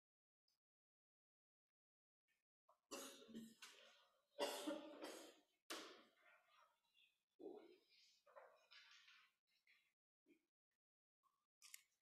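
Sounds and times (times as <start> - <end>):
faint harsh coughing: 2.9 - 3.8, 4.4 - 5.5.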